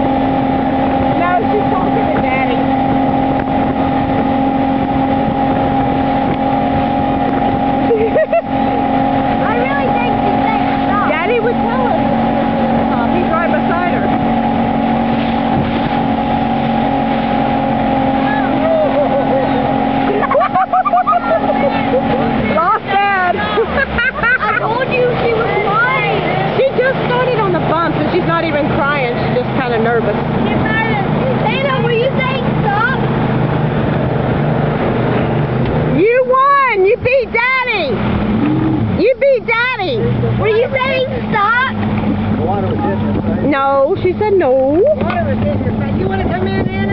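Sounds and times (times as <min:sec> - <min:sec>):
motorboat engine running: 0:00.0 - 0:46.9
rush of boat wake: 0:00.0 - 0:46.9
voices calling out: 0:00.0 - 0:46.9.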